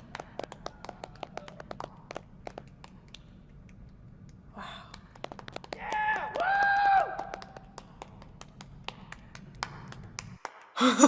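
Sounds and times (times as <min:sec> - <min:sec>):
hand clapping: 0:00.0 - 0:11.0.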